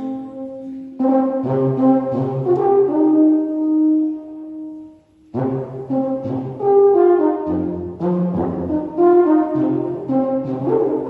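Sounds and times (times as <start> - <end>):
alphorn playing in church: 0.0 - 11.0.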